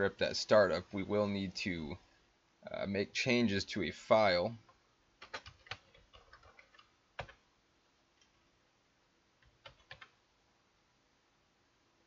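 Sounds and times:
computer keyboard typing: 5.2s - 7.4s, 9.4s - 10.2s.

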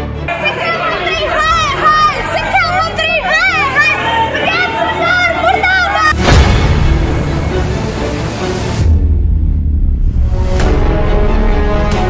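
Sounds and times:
woman pleading and shouting: 0.3s - 6.3s
women arguing loudly: 0.3s - 6.3s.

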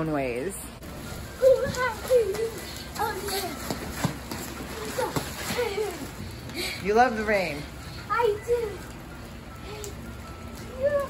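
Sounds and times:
child's high-pitched voice: 1.4s - 3.8s, 8.1s - 8.9s, 10.6s - 11.0s.

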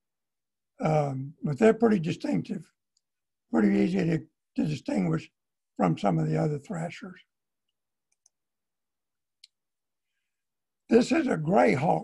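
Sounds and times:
man speaking: 0.8s - 2.8s, 3.5s - 7.3s, 10.9s - 12.0s
computer mouse clicks: 7.7s - 8.4s.

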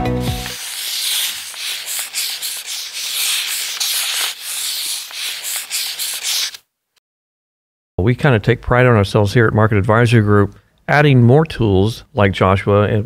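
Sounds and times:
marker pen scribbling: 0.2s - 6.6s.

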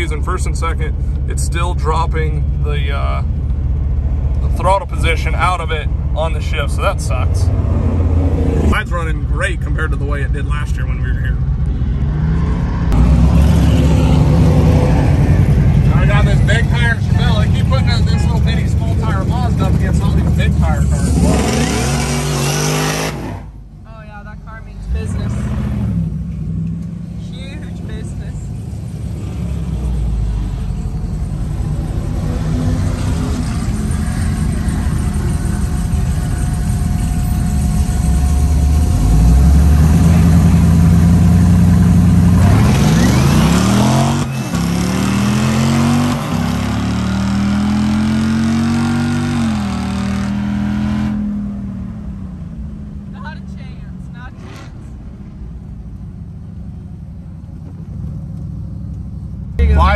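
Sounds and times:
car engine revving at full throttle: 6.2s - 23.7s, 24.5s - 30.6s, 31.6s - 55.4s.

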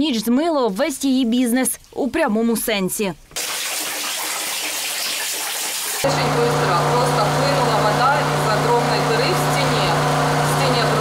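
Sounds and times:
water pouring: 0.7s - 6.1s.

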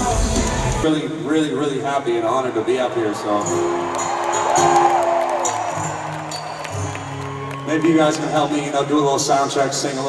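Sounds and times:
crowd noise: 0.0s - 10.0s
soft live music over pa: 0.0s - 10.0s.

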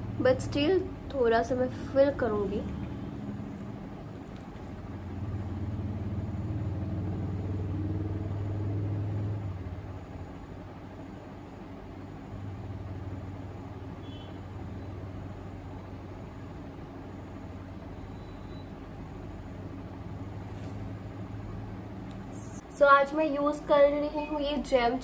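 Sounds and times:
passing road vehicle rumble: 0.0s - 18.0s, 18.7s - 22.6s.

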